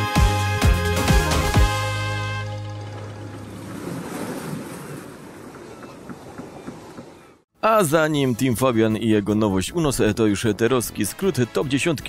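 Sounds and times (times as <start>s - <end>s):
water rushing: 1.8s - 7.4s.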